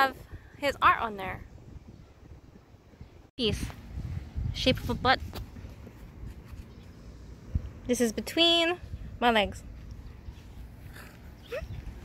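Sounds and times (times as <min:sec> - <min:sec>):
low rumble of background noise: 0:00.0 - 0:12.0.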